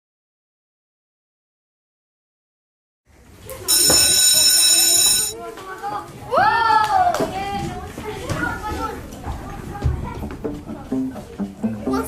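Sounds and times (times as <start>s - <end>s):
children chattering: 3.3s - 12.0s
electric school bell ringing: 3.7s - 5.4s.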